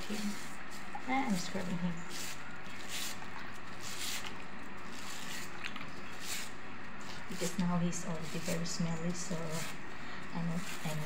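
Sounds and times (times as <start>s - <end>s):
brush scrubbing wet spines: 0.0s - 11.0s.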